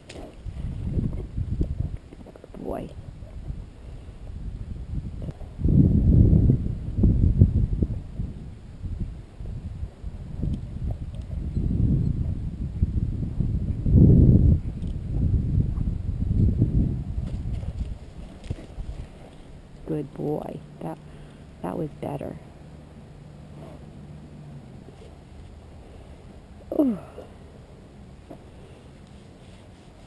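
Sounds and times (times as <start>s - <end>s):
horse hooves thudding in sand: 14.6s - 19.6s.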